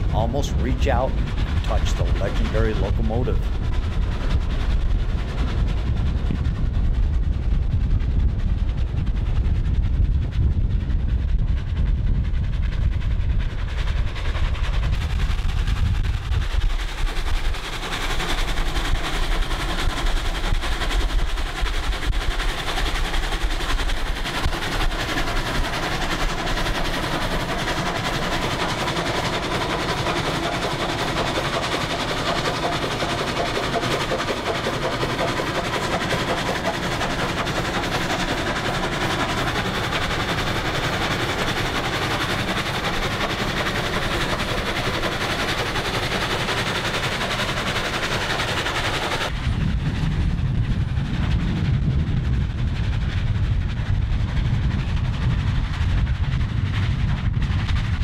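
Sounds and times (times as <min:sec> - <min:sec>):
steam locomotive exhaust chuffing: 0:00.0 - 0:58.0.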